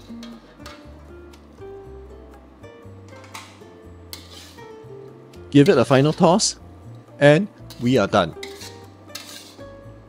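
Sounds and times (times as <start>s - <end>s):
soft background music: 0.0s - 10.0s
metal spatula scraping wok: 4.1s - 4.9s, 5.6s - 6.6s, 7.6s - 9.9s.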